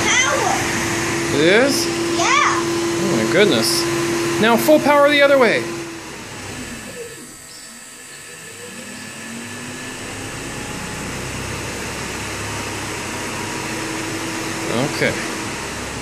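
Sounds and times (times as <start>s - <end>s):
electric motor whine: 0.0s - 16.0s.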